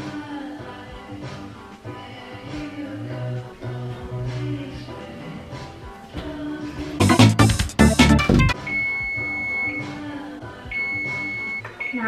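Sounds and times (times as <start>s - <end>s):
music: 0.0s - 12.0s
oven timer beeps: 8.6s - 10.0s, 10.7s - 12.0s.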